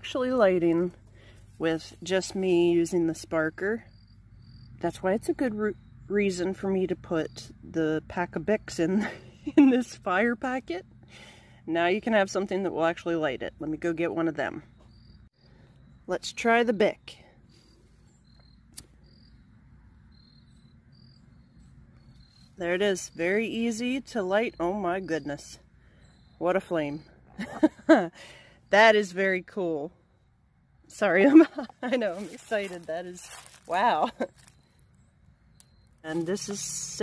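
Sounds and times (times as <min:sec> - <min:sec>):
faint high-pitched chirps: 0:32.2 - 0:37.0.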